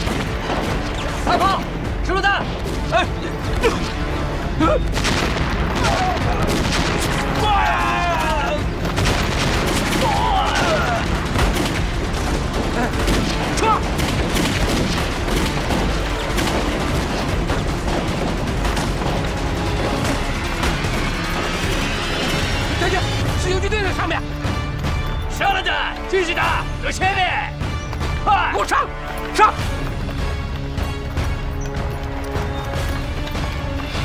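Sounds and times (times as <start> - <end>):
rifle fire: 0.0 - 1.2, 4.9 - 7.4, 8.2 - 22.6
background music: 0.0 - 34.0
explosions: 4.9 - 23.4
people shouting: 5.7 - 8.8, 9.8 - 11.3, 12.7 - 14.0, 28.2 - 29.6.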